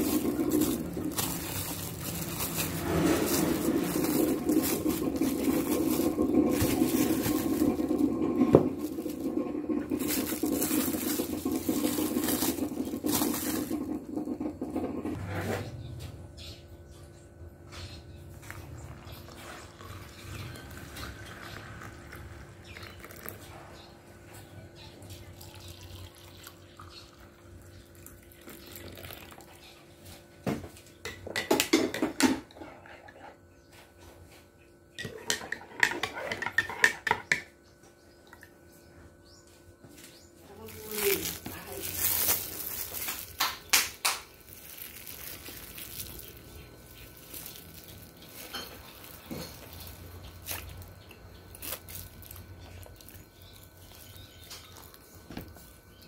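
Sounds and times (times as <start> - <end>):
water poured into a mug: 18.5 - 23.4, 25.3 - 27.3, 27.9 - 29.6.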